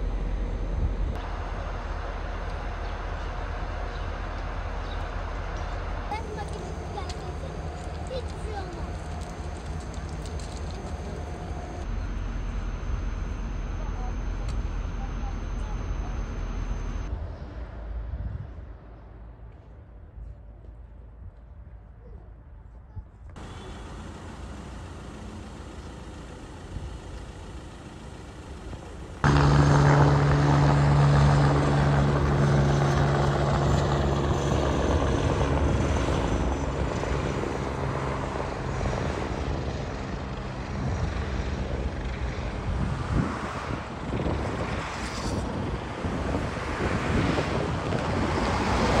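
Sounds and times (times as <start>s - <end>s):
helicopter rotor drone: 0.0s - 19.9s, 23.4s - 49.0s
faint outdoor background: 0.0s - 49.0s.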